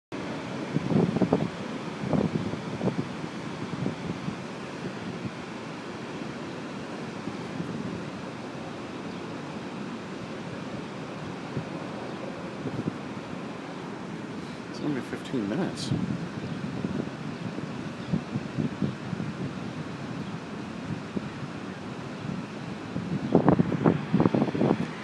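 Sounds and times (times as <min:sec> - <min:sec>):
water roaring: 0:00.1 - 0:25.0
wind buffeting microphone: 0:00.2 - 0:25.0.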